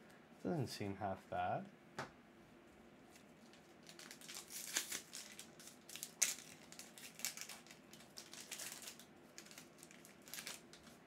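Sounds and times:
foil wrapper crinkling and tearing: 0:03.2 - 0:11.0.

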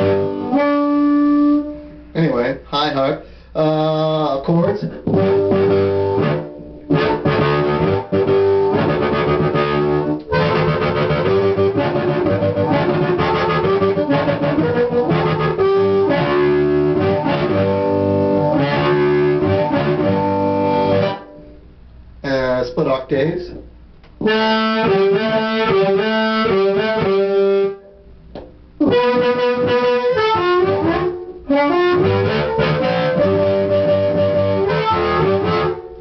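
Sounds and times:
amplified blues harmonica: 0:00.0 - 0:02.1, 0:05.0 - 0:21.4, 0:24.2 - 0:27.8, 0:28.8 - 0:36.0.

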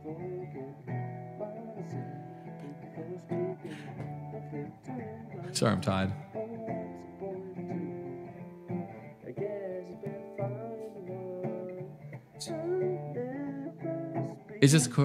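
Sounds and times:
strummed acoustic guitar: 0:00.0 - 0:15.0
young man singing: 0:00.0 - 0:15.0.

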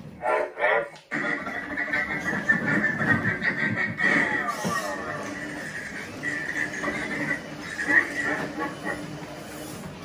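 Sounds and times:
robot droid vocalizations: 0:01.1 - 0:09.0.

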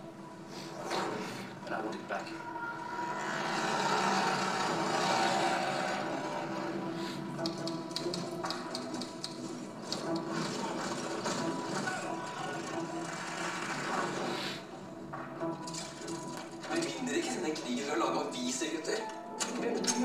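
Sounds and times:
film score over speakers: 0:00.0 - 0:20.0.

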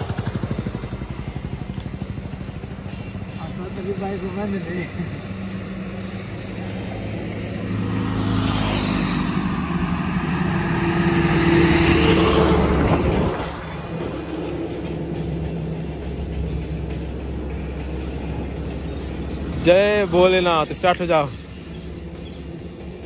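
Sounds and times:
low traffic hum: 0:00.0 - 0:23.0
heavy truck passing: 0:02.1 - 0:23.0.

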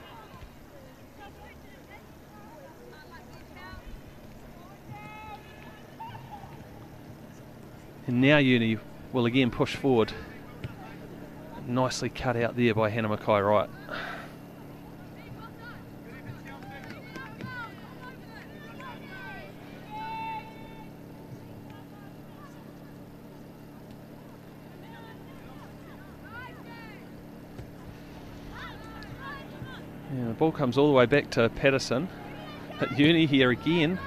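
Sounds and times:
distant shouts of footballers: 0:00.0 - 0:34.0
steady low hum: 0:00.0 - 0:34.0.

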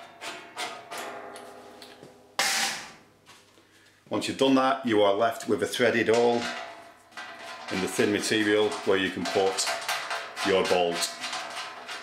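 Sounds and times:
tool scraping rush: 0:07.4 - 0:12.0.

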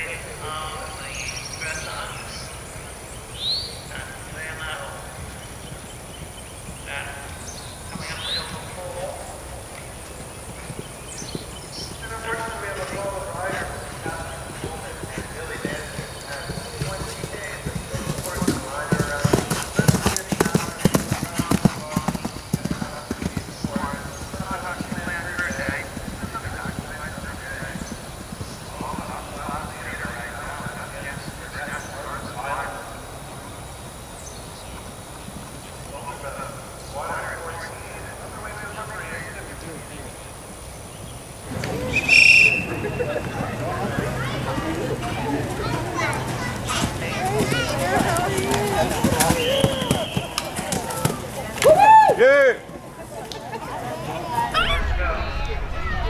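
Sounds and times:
faint voices talking: 0:00.0 - 0:56.0
horse galloping on turf: 0:03.7 - 0:33.2, 0:41.2 - 0:51.8.

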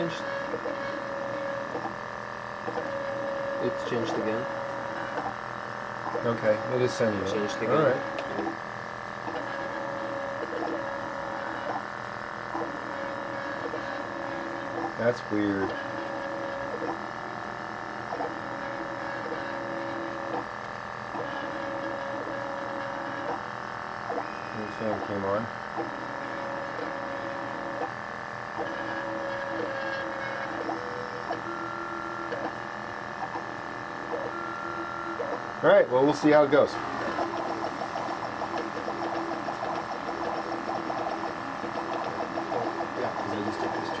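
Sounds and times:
steady hum: 0:00.0 - 0:44.0
stepper motors whining: 0:33.2 - 0:44.0.

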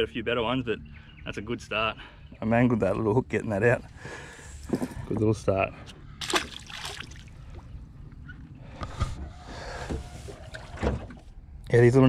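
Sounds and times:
low water noise: 0:05.8 - 0:11.7
fish splashing into water: 0:06.2 - 0:07.7.

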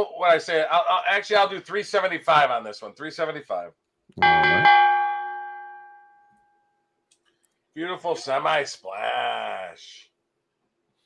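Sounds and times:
bell ringing: 0:04.2 - 0:06.5.

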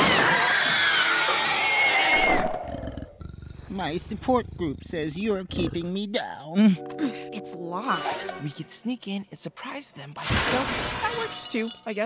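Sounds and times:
cartoon dragon roar: 0:00.0 - 0:03.8.

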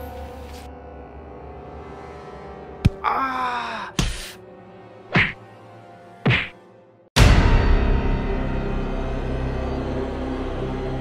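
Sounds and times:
dark horror film score: 0:00.0 - 0:11.0.

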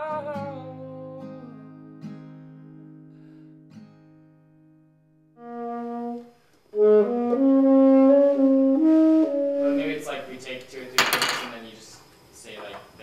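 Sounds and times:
tenor saxophone playing: 0:05.4 - 0:10.4.

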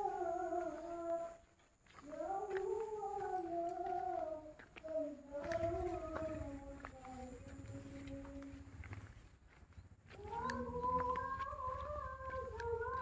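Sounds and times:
person chanting: 0:00.0 - 0:08.8, 0:10.2 - 0:13.0.

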